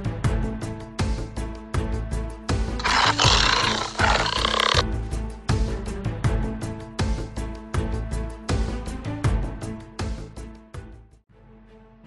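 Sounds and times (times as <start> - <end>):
background music: 0.0 - 12.0
rough animal roar: 2.8 - 4.8.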